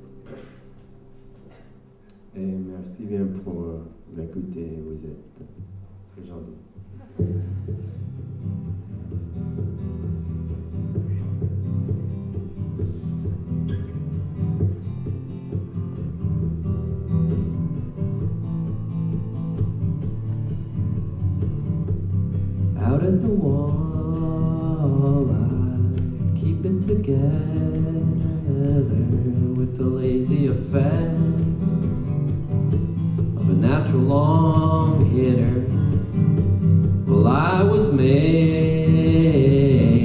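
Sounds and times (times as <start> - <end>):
acoustic guitar playing: 0.0 - 40.0
man singing: 22.8 - 31.8, 33.4 - 36.2, 37.0 - 40.0.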